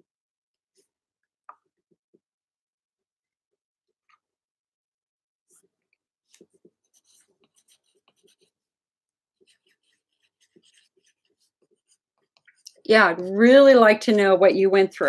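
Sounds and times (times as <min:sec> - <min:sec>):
pen scratching on paper: 0:06.3 - 0:08.7, 0:09.4 - 0:13.3
person speaking: 0:12.6 - 0:15.0.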